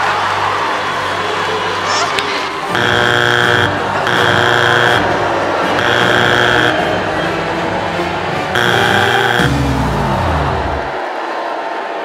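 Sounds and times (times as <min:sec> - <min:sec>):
electronic buzzer: 0:02.7 - 0:07.0, 0:08.6 - 0:10.9.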